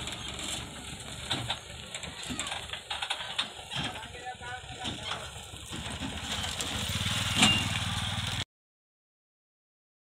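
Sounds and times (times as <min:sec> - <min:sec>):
motorcycle engine passing by: 0:05.2 - 0:08.4.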